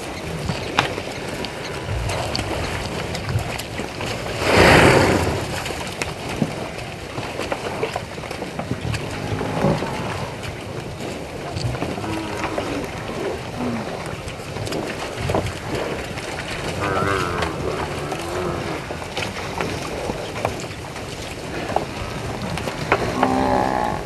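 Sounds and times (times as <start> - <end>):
buffalo moo-like calls: 9.0 - 10.3, 11.8 - 14.0, 16.7 - 19.0, 23.0 - 24.0.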